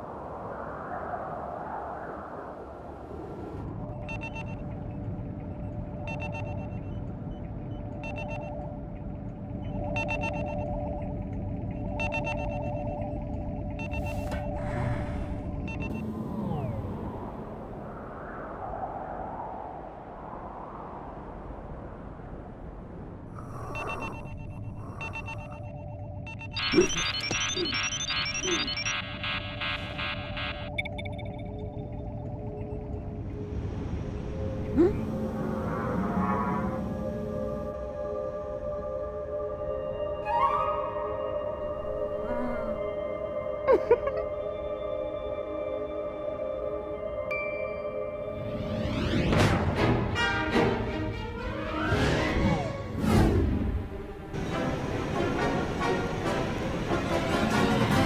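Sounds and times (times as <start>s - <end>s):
held hum tone: 23.4s - 28.8s
high electronic beeps: 23.6s - 31.4s.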